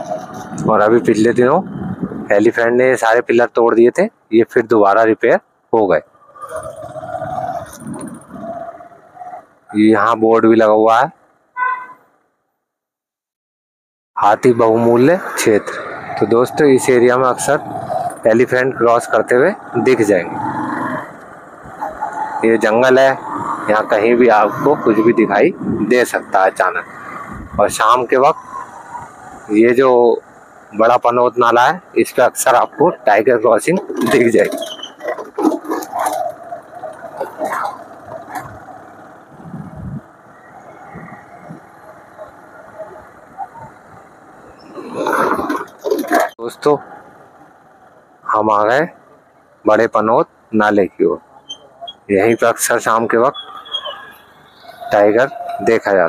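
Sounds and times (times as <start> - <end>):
wind rumbling on microphone: 0.0 - 2.7, 6.4 - 9.3, 23.1 - 29.5, 33.8 - 47.0
motorcycle running: 6.0 - 9.9, 14.9 - 49.6.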